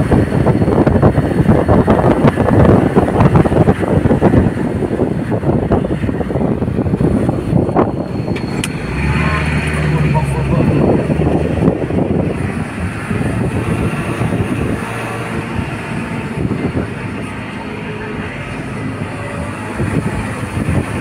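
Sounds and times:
low engine drone: 0.0s - 21.0s
road noise rumble: 0.0s - 21.0s.

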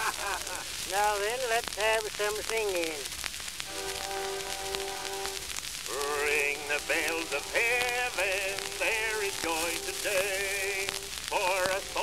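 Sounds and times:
record surface crackle: 0.0s - 12.0s.

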